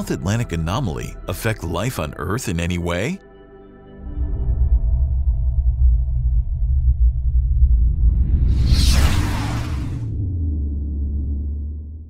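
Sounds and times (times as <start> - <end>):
deep bass drone rumble: 4.0 - 12.0.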